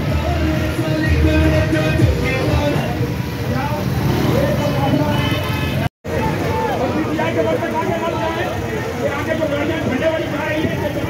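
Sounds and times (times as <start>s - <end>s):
road traffic rumble: 0.0s - 11.0s
voices calling out: 0.0s - 11.0s.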